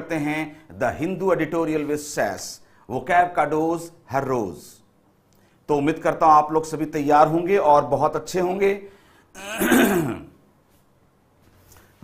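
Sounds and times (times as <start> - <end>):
man clearing his throat: 9.4 - 10.4.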